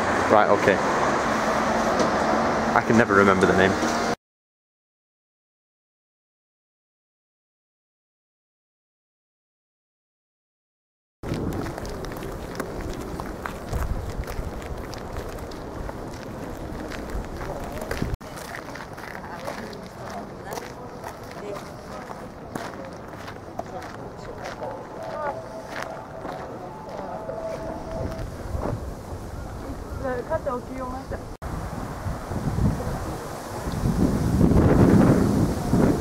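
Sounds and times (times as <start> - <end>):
footsteps outdoors: 11.2 - 36.0
wind buffeting microphone: 11.2 - 36.0
low rumble on microphone: 23.8 - 36.0
faint steady note: 24.6 - 28.6.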